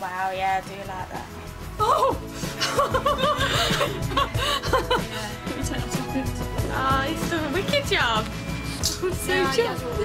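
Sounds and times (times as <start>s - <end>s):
background music: 0.0s - 10.0s
young woman laughing: 1.8s - 6.2s.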